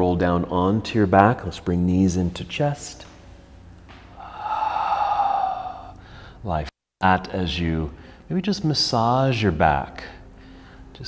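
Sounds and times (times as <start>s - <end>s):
man exhaling through mouth: 4.1s - 6.3s.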